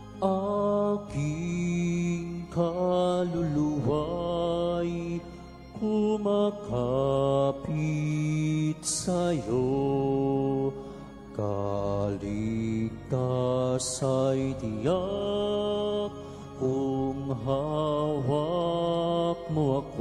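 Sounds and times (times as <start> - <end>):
slow hymn singing: 0.0 - 20.0
sustained low accompaniment: 0.0 - 20.0.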